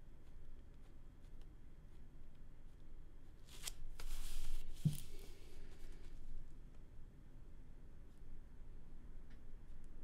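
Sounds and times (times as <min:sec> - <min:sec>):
paper rustling: 0:03.4 - 0:06.3.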